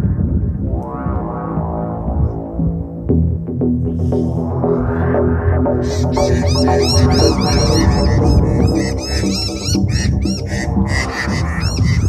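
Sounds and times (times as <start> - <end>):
low droning hum: 0.0 - 12.0
birds chirping agitatedly: 5.8 - 12.0.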